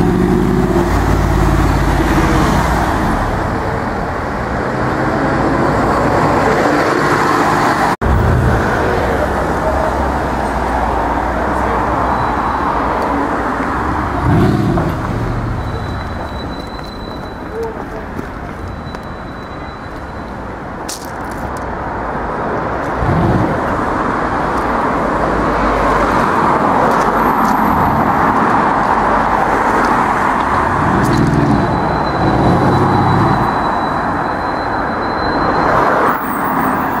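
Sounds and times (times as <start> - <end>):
car engine pulling away: 13.8 - 16.3, 29.0 - 33.8.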